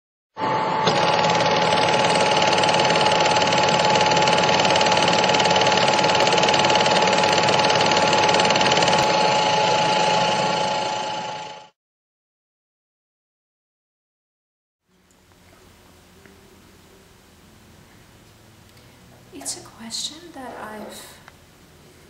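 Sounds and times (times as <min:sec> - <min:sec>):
mechanical whirring clatter: 0:00.8 - 0:11.7.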